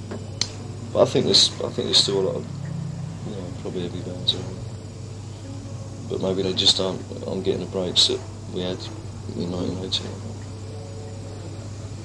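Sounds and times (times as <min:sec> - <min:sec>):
even hiss: 0:00.0 - 0:12.0
low hum: 0:00.0 - 0:12.0.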